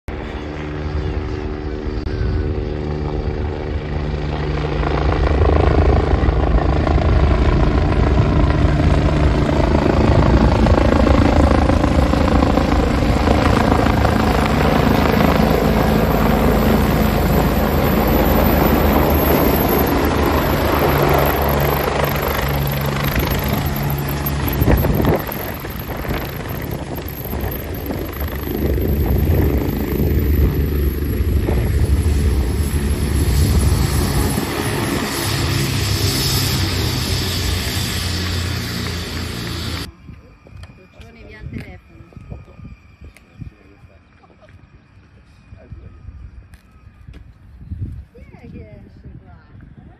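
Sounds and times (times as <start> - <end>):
helicopter rotor and turbine noise: 0.1 - 49.9.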